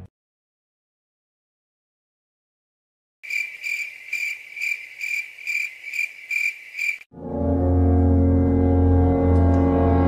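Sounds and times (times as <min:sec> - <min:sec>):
cricket chirping: 0:03.2 - 0:07.1.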